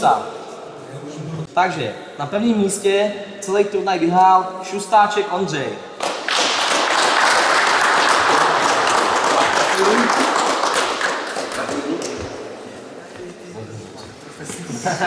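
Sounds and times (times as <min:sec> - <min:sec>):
people applauding: 0:06.0 - 0:12.4.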